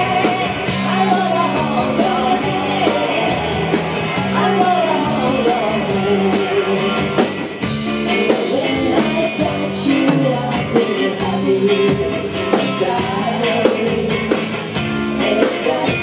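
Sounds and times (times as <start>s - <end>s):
bass guitar: 0.0s - 16.0s
drum kit with cymbal strikes: 0.0s - 16.0s
electric guitar: 0.0s - 16.0s
woman singing lead: 0.0s - 16.0s.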